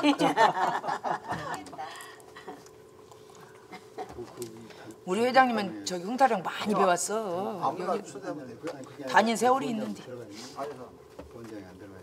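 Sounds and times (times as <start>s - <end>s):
group laughing and chattering: 0.0s - 2.7s.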